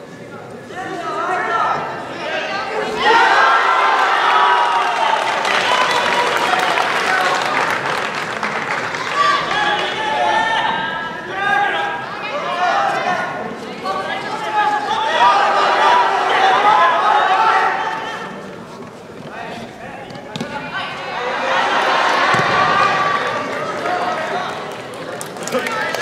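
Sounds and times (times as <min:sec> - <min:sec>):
voices shouting in hall: 0:00.7 - 0:08.0, 0:08.7 - 0:18.5, 0:20.5 - 0:26.0
crowd applauding: 0:03.7 - 0:10.2, 0:21.6 - 0:26.0.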